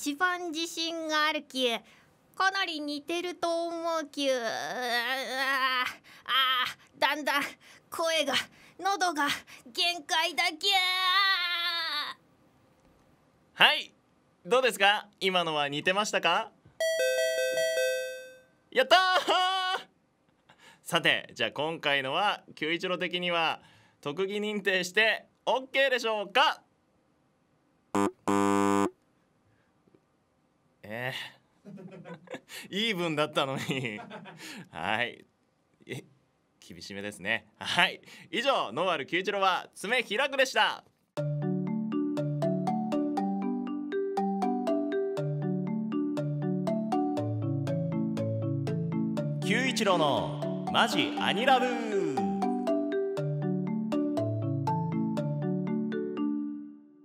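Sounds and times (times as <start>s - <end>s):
wrong-answer buzzer: 28.0s - 29.0s
chiming musical jingle: 49.4s - 53.4s.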